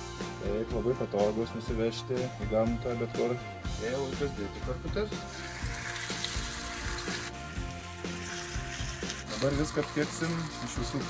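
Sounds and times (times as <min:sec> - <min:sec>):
meat sizzling on a grill: 0:05.1 - 0:11.0.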